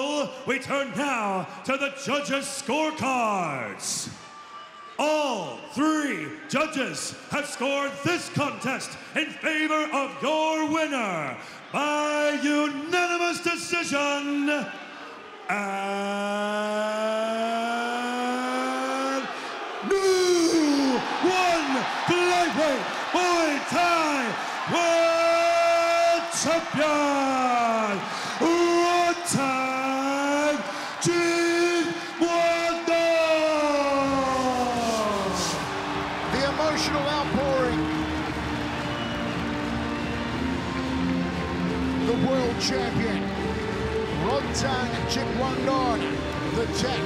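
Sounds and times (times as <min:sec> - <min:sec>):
background music: 0:17.3 - 0:47.0.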